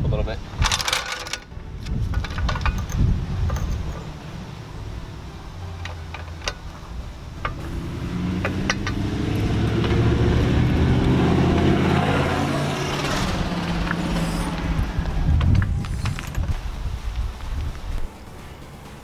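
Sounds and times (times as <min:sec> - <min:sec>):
wind on microphone: 0:01.5 - 0:04.1, 0:08.9 - 0:18.2
car passing: 0:03.2 - 0:16.7.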